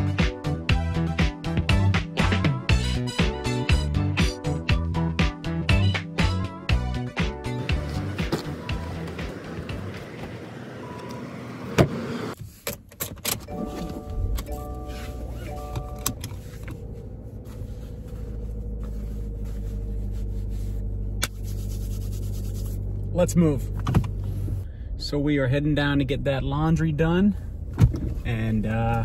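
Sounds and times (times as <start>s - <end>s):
car engine starting and idling: 6.7s - 29.0s
dashboard warning chime: 13.4s - 16.2s.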